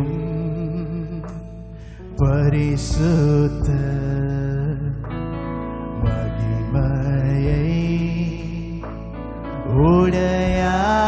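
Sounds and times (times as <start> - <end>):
men singing worship song: 2.2 - 5.0, 9.7 - 11.0.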